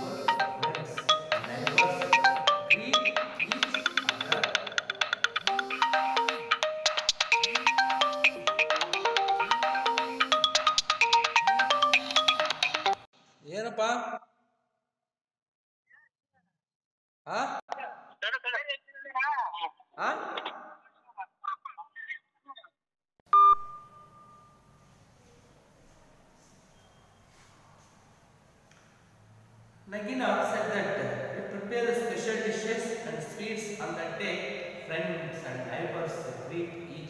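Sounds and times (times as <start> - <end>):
loud electronic beep: 0.0 - 12.4
phone ringtone melody: 0.0 - 13.1.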